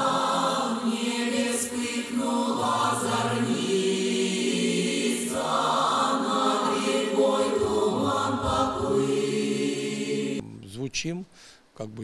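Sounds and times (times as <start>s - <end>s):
vocal ensemble singing folk song: 0.0s - 10.6s.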